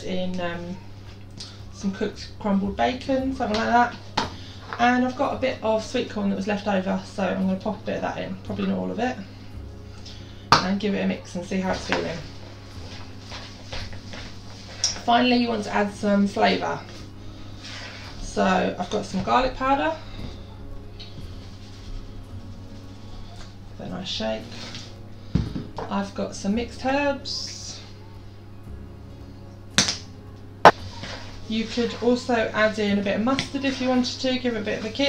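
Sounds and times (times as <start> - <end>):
faint background music: 0.0 - 35.0.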